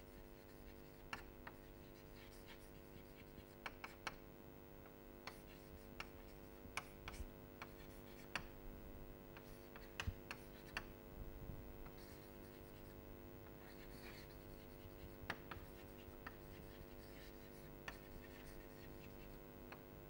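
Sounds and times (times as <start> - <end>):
steady low hum: 0.0 - 20.0
chalk scratching on blackboard: 0.2 - 3.9, 11.9 - 13.0, 13.6 - 19.4
chalk tapping: 0.5 - 4.2, 13.6 - 19.4.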